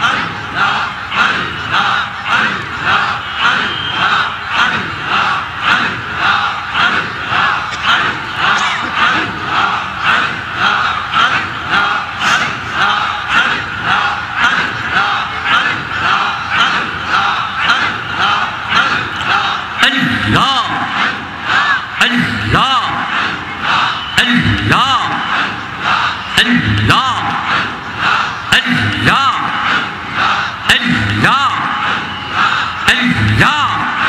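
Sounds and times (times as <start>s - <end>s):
men chanting in unison: 0.0s - 34.0s.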